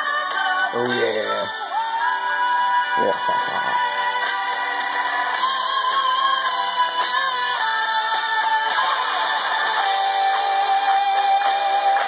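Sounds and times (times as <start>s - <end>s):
music through small laptop speakers: 0.0s - 12.0s.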